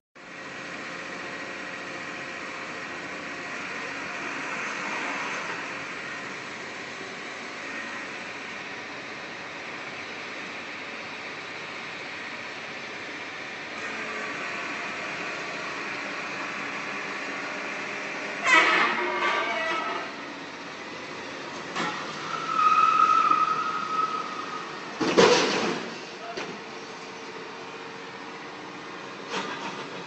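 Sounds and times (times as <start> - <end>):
tow truck humming: 0.2 - 30.0
high squeal: 22.2 - 24.8.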